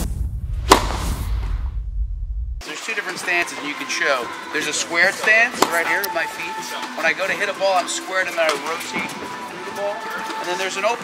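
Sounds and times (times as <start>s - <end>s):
deep bass drone: 0.0s - 2.6s
swooshes: 0.0s - 2.6s.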